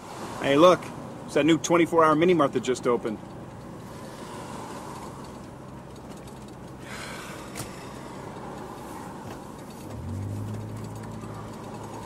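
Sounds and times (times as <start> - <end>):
car engine with road noise: 0.0 - 12.0
deep engine hum: 3.2 - 12.0.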